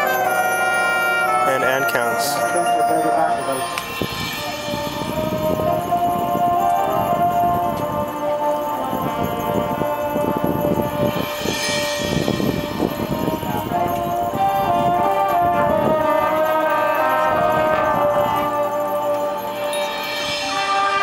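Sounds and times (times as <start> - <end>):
brass chords: 0.0 - 21.0
drums: 3.3 - 21.0.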